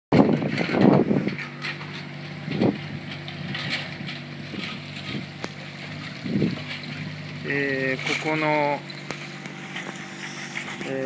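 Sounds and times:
wind rushing over microphone: 0:00.1 - 0:01.5, 0:06.1 - 0:06.7
engine idling: 0:00.1 - 0:11.0.

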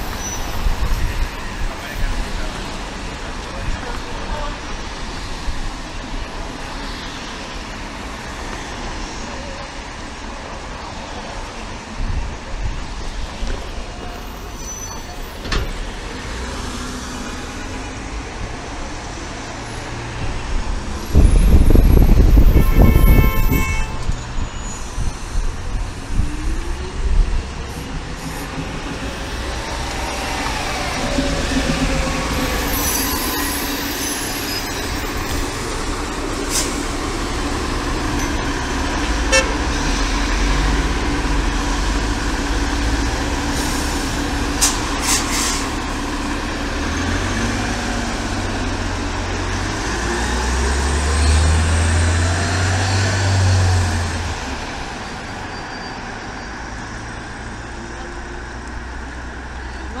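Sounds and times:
bus engine accelerating away: 0:00.0 - 0:22.5, 0:24.2 - 1:00.0
street traffic: 0:00.0 - 1:00.0.

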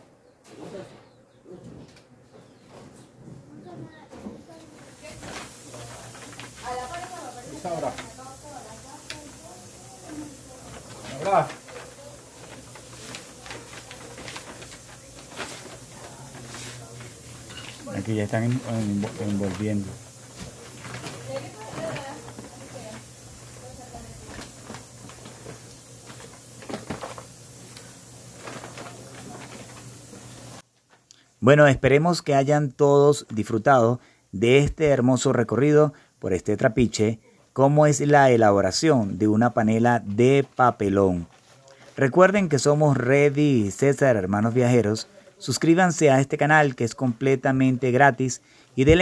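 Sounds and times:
paper rustling and crinkling: 0:04.5 - 0:30.6.

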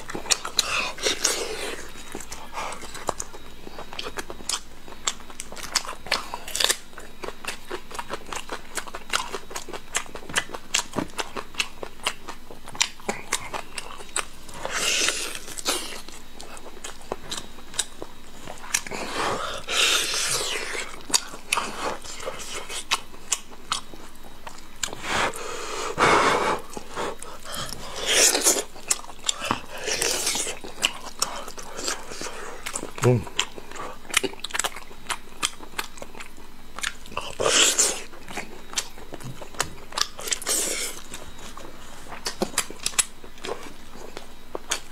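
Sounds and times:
chewing meat: 0:00.0 - 0:44.9
person humming: 0:33.0 - 0:33.3.

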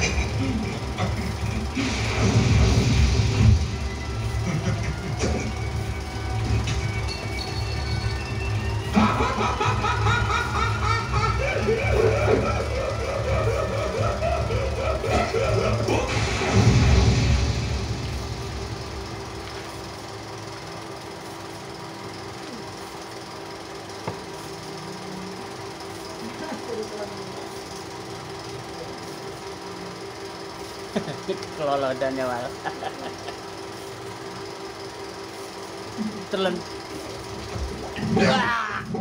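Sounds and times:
film music over loudspeakers: 0:00.0 - 0:20.5
steady hum: 0:00.0 - 0:39.0.

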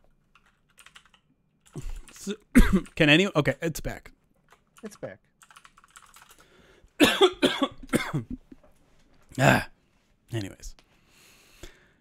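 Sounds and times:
man coughing: 0:01.8 - 0:03.0, 0:07.0 - 0:08.5, 0:09.4 - 0:09.8.

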